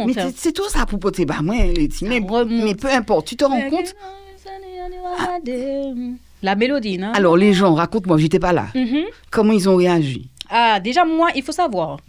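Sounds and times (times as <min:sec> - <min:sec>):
woman singing unaccompanied: 0:01.9 - 0:07.0.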